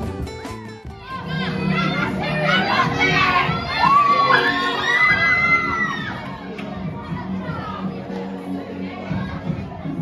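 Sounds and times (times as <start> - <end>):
background music: 0.0 - 10.0
children chattering and shouting: 0.0 - 10.0.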